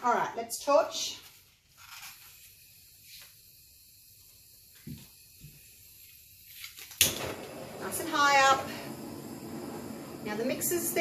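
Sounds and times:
gas torch hissing: 2.4s - 11.0s.

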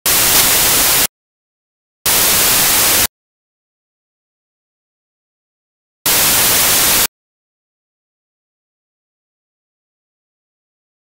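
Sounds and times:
loud hissing static: 0.0s - 1.1s, 2.1s - 3.1s, 6.1s - 7.1s.

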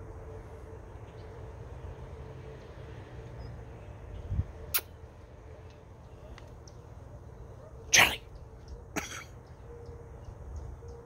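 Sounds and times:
person sneezing: 7.9s - 8.2s.

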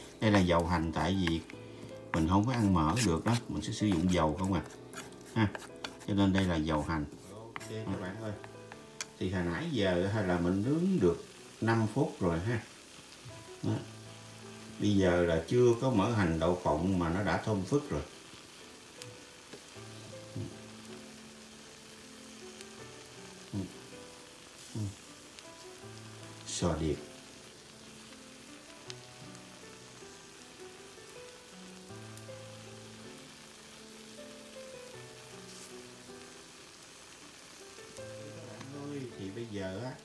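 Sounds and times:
scallops sizzling on a grill: 0.0s - 40.0s
soft background music: 0.0s - 40.0s.

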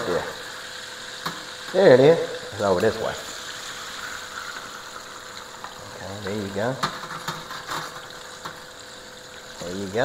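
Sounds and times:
fish sizzling in hot oil: 0.0s - 10.0s.

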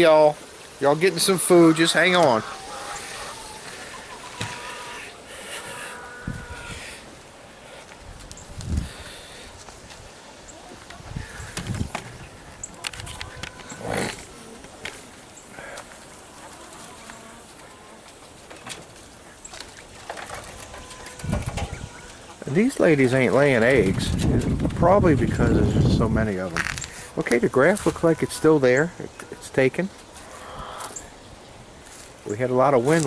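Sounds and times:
quail chirping and calling: 1.3s - 7.0s, 16.2s - 22.5s, 27.8s - 31.6s.

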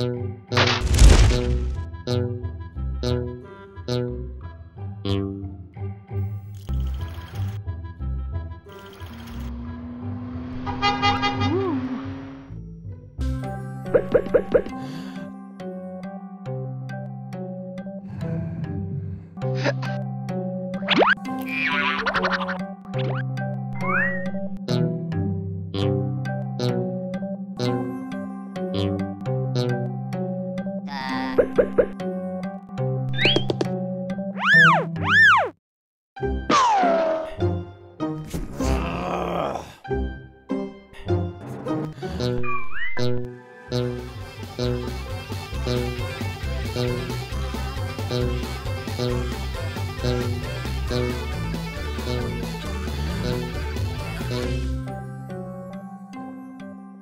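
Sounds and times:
cartoon soundtrack music: 0.0s - 35.6s, 36.2s - 57.0s.

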